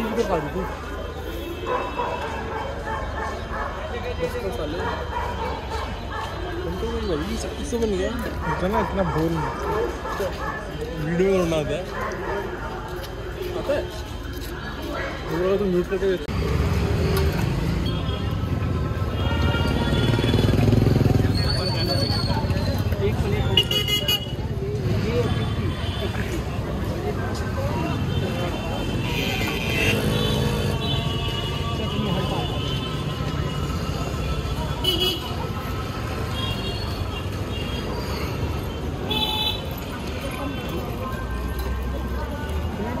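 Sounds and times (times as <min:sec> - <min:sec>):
background voices chattering: 0:00.0 - 0:43.0
scooters and cars in traffic: 0:00.0 - 0:43.0.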